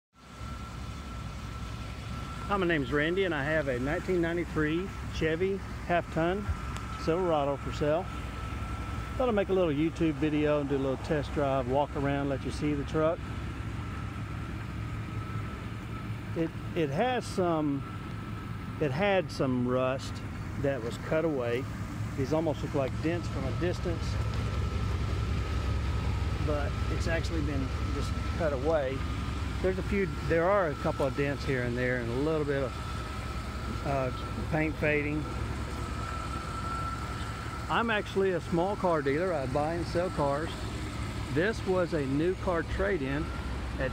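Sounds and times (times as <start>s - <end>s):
faint steady whine: 0.2s - 43.9s
thin steady high tone: 0.2s - 43.9s
vehicle engine idling: 0.2s - 43.9s.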